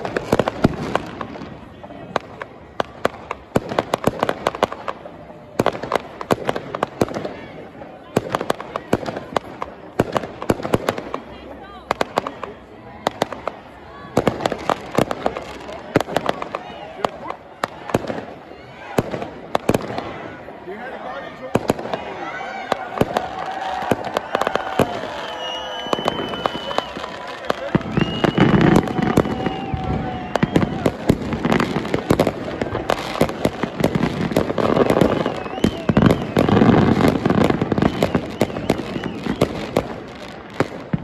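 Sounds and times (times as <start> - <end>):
fireworks bangs and crackles: 0.0 - 41.0.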